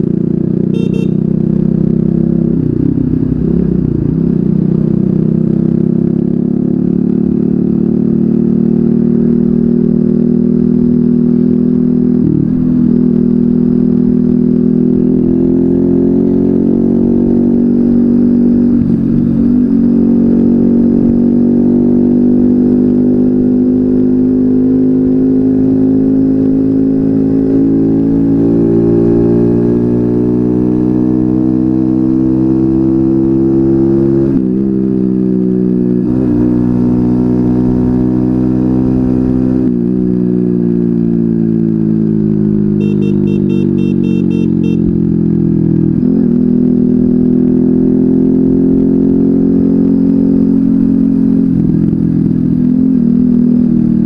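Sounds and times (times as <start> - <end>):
moped engine running: 0.0 - 6.6, 42.6 - 46.1.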